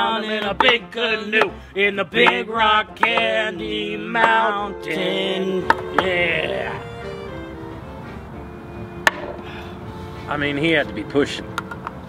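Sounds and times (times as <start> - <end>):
faint music: 0.0 - 12.0
sharp knock: 3.0 - 3.3.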